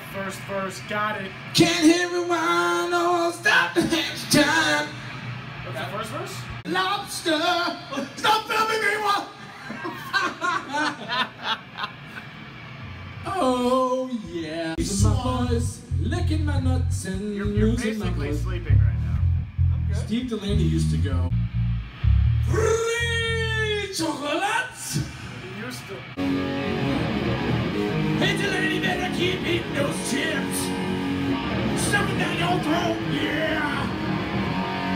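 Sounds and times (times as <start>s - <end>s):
man laughing: 9.4s - 12.4s
electric guitar chords: 14.8s - 23.7s, 26.0s - 34.9s.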